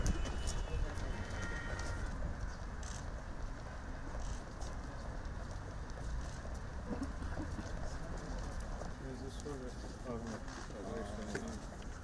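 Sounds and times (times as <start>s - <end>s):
footsteps on paving: 0.0s - 12.0s.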